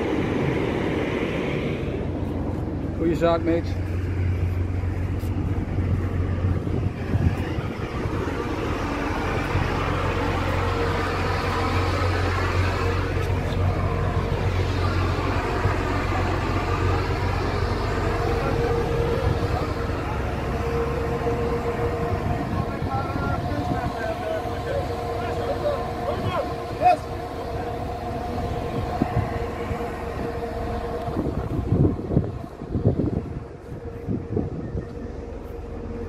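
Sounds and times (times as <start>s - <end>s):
ship low rumble: 0.0s - 36.0s
wind noise: 0.0s - 36.0s
men talking and calling out: 2.1s - 31.7s.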